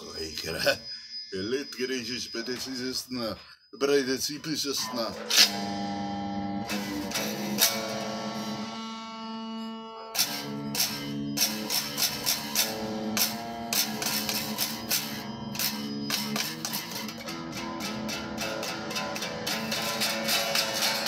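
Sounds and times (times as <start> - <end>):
electric guitar chord ringing: 4.8 - 21.0
electric guitar picked strums: 4.8 - 21.0.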